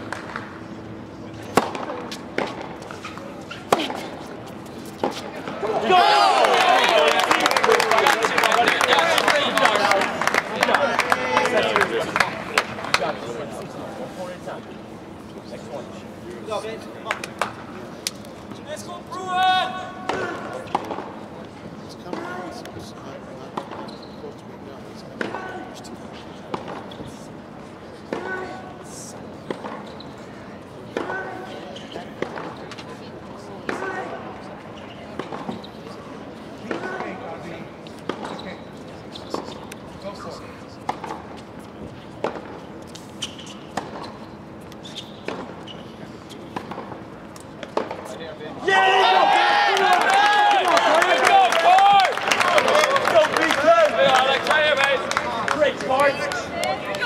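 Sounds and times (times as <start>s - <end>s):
tennis ball hit by rackets: 1.5s - 4.0s, 4.8s - 5.5s, 42.2s - 42.6s, 46.5s - 48.1s
loud voices: 5.1s - 13.1s.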